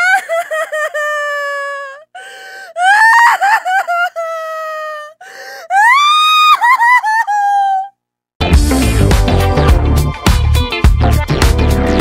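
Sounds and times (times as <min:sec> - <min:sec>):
high-pitched voice crying and wailing: 0:00.0 - 0:02.1, 0:02.8 - 0:08.0.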